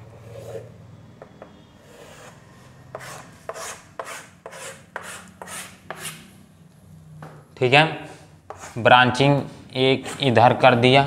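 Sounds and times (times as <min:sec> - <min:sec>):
scraping strokes on writing board: 0:00.1 - 0:06.2, 0:08.1 - 0:08.9.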